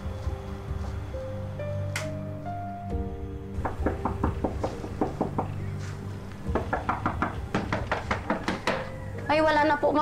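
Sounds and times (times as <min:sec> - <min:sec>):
background music: 0:00.0 - 0:10.0
knocking on a door: 0:03.6 - 0:05.6, 0:06.5 - 0:08.9.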